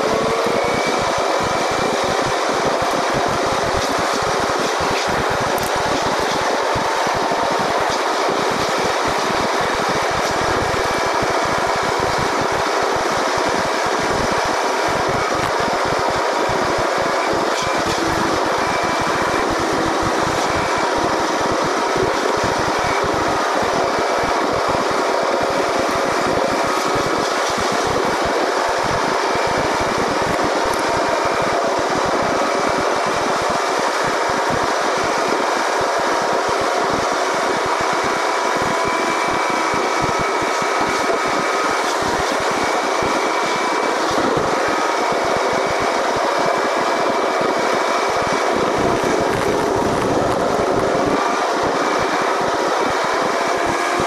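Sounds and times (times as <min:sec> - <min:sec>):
car road and engine noise: 0:00.0 - 0:54.0.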